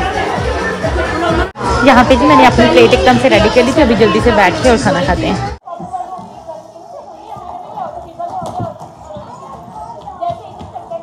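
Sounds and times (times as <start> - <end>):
background voices in busy hall: 0.0 - 11.0.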